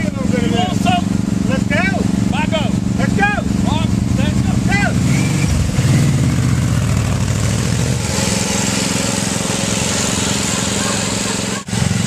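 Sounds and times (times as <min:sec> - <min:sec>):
lawnmower engine running: 0:00.0 - 0:12.0.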